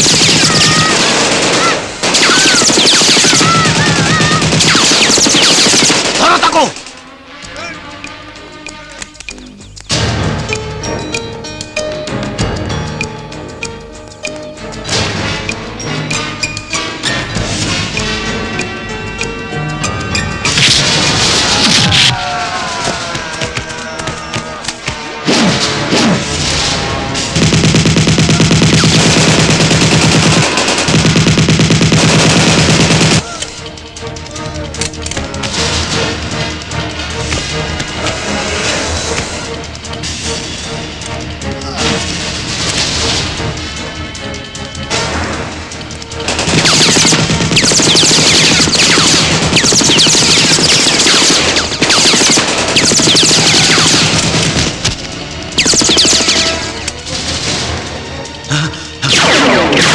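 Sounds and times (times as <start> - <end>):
rapid automatic gunfire: 0.0 - 6.7, 25.2 - 33.2, 46.1 - 58.0, 59.1 - 59.9
ricochet whines: 2.1 - 6.0, 46.6 - 55.0, 55.6 - 56.8, 59.0 - 59.9
person crying out: 3.4 - 4.5.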